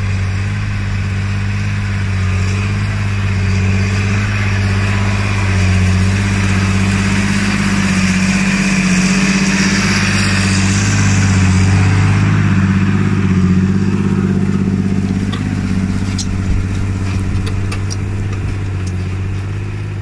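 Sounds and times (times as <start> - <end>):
plough hiss: 0.0 - 20.0
tractor diesel engine under load: 0.0 - 20.0.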